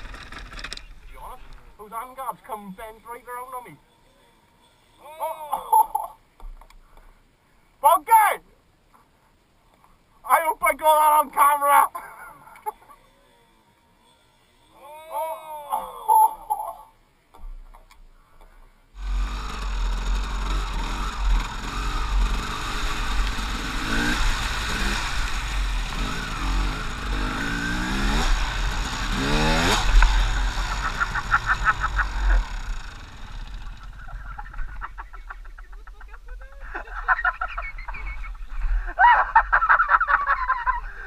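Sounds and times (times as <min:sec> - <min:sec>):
dirt bike engine revving: 0:00.0 - 0:05.7, 0:12.6 - 0:15.7, 0:19.0 - 0:34.9.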